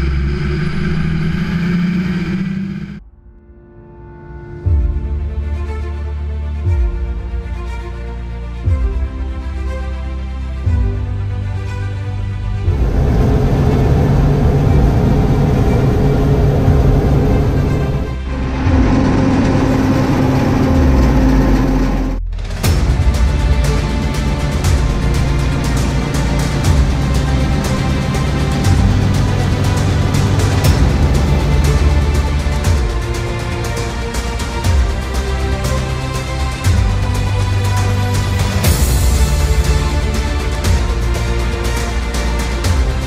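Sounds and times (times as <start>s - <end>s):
engine running steadily: 0.0s - 3.0s, 12.6s - 43.0s.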